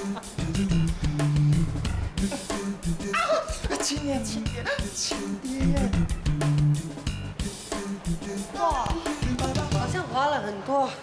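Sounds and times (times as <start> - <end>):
background music: 0.0 - 11.0
man whimpering: 2.2 - 6.0.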